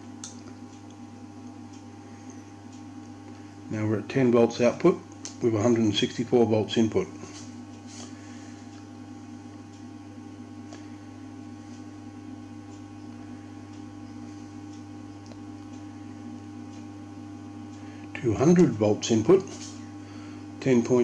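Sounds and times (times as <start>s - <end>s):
transformer mains hum: 0.0s - 21.0s.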